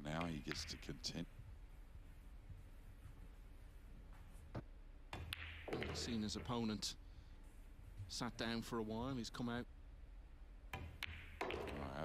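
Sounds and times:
billiard balls clicking: 0.1s - 1.2s, 5.1s - 6.8s, 10.7s - 12.0s
cue tip striking ball: 5.2s - 6.2s, 10.8s - 12.0s.

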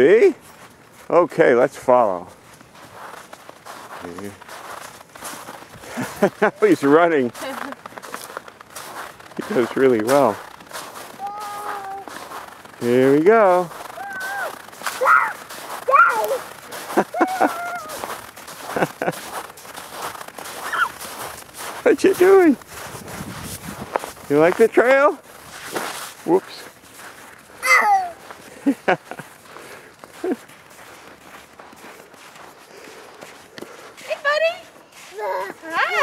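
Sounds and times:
footsteps on packed snow: 0.0s - 36.0s
toddler babbling: 11.2s - 12.1s, 14.0s - 16.4s, 17.2s - 18.0s, 27.6s - 28.3s, 35.2s - 35.8s.

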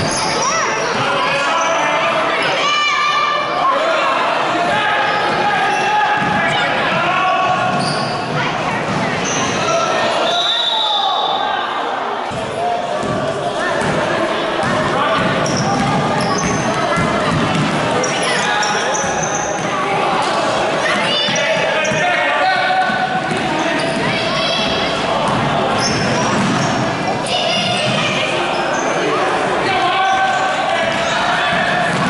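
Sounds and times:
sneakers squeaking: 0.0s - 2.8s, 5.0s - 11.4s, 12.2s - 32.0s
voices shouting in a hall: 0.0s - 32.0s.

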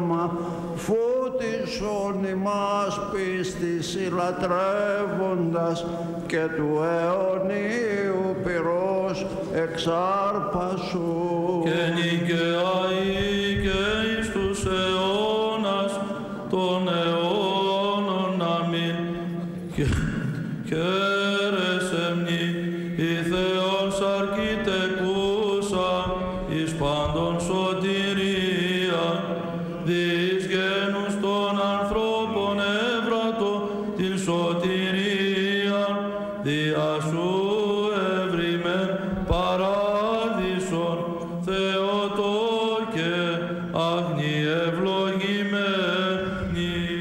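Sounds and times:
men singing chant melody: 0.0s - 47.0s.

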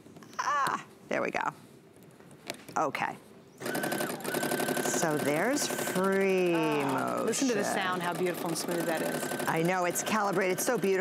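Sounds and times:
sewing machine stitching: 3.6s - 11.0s.

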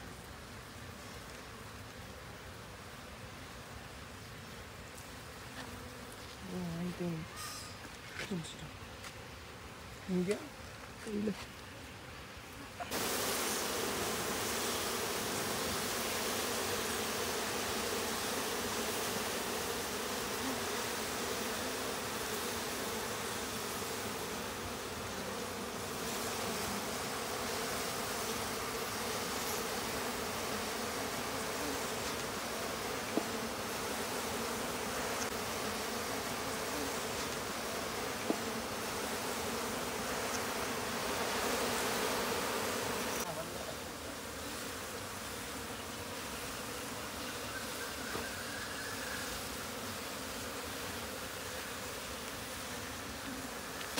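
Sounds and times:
bees buzzing: 0.0s - 53.9s.

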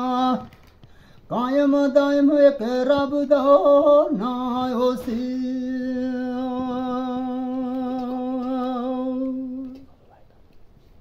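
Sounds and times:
man singing a long note: 1.3s - 9.8s.

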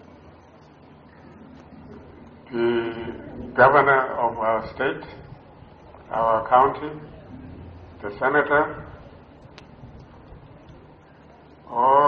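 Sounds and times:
faint background noise: 0.0s - 12.0s
man speaking: 2.5s - 5.2s, 6.1s - 7.1s, 8.0s - 9.0s, 11.7s - 12.0s.

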